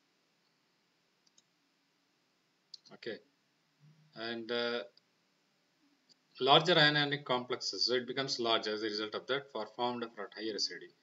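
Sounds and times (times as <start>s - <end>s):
faint clicks: 1.2s - 1.5s.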